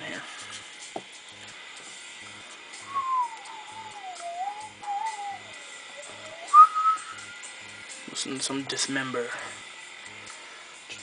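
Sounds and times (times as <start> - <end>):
person whistling a tune: 2.8 - 7.5.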